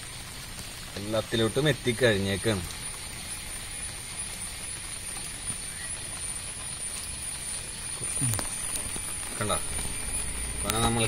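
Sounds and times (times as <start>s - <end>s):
background hiss with crackle: 0.0s - 11.0s
thin high whine: 2.4s - 11.0s.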